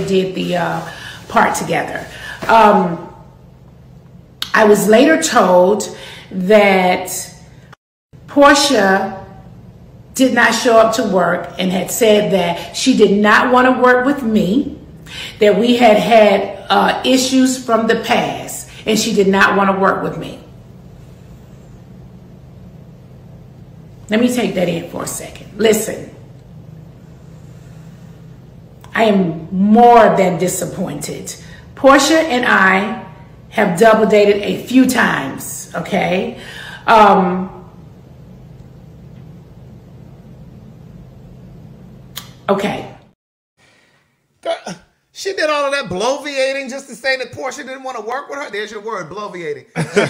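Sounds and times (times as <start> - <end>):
low steady hum: 0.0 - 50.0
person vocal noise: 44.4 - 44.8.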